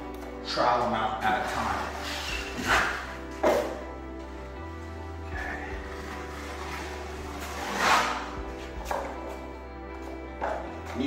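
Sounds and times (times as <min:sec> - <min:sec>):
background music with sustained notes: 0:00.0 - 0:11.0
trowel scraping joint compound: 0:01.5 - 0:03.6, 0:06.8 - 0:09.0.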